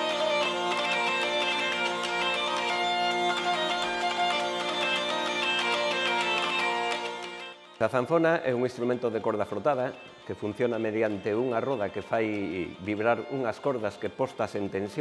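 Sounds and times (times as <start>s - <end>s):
hurdy-gurdy melody over drones: 0.0s - 15.0s.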